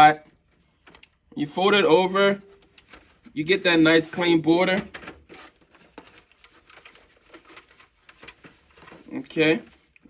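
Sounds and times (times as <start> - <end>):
plastic crinkling and rustling: 2.1 - 10.0.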